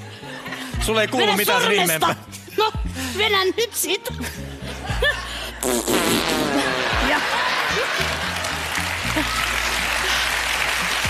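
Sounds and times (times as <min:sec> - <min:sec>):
background music: 0:00.0 - 0:11.0
studio audience laughing: 0:06.4 - 0:10.8.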